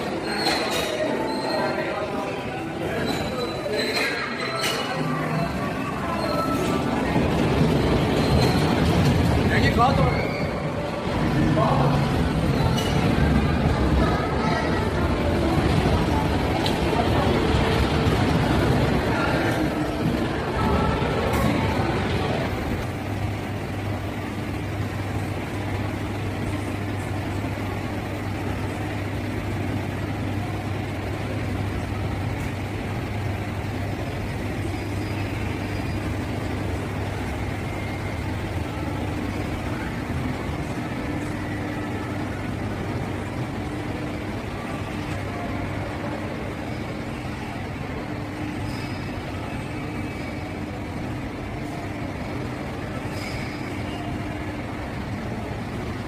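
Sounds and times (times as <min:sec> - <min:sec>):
ventilation hum and rushing: 0:01.8 - 0:56.0.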